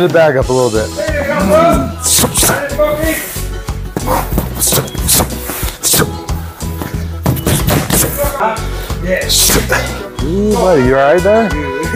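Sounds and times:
music with heavy bass beat: 0:04.0 - 0:06.3, 0:07.3 - 0:08.3
boxing gloves smacking pads: 0:07.3 - 0:08.3.

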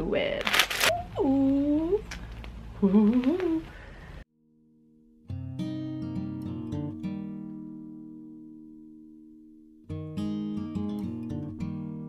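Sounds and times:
fake spider web crackling: 0:00.3 - 0:03.7
woman humming: 0:00.9 - 0:02.1, 0:02.8 - 0:03.8.

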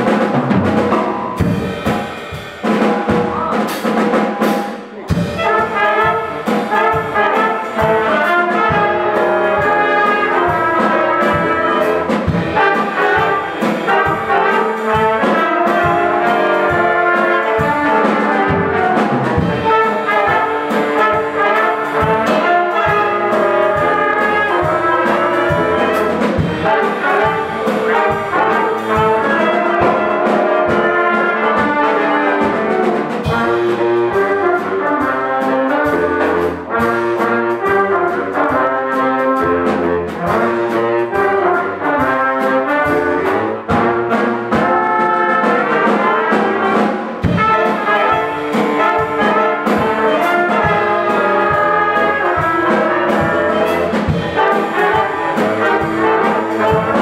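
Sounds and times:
drum kit: 0:00.0 - 0:57.0
horn section: 0:00.0 - 0:57.0
jazz combo playing: 0:00.0 - 0:57.0.

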